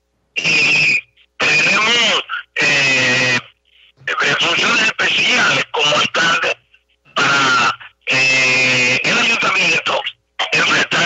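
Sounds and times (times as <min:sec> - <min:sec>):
person's voice: 0:01.4 - 0:11.0.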